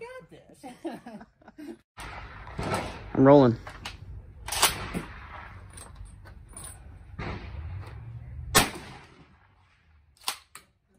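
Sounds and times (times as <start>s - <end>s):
shotgun shot: 2.0s - 3.6s, 4.5s - 5.7s, 7.1s - 7.8s, 8.5s - 9.9s.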